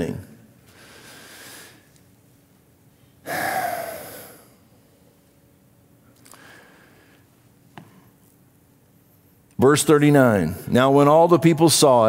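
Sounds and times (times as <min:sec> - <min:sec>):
man's sharp gasping breath: 0:03.2 - 0:04.5.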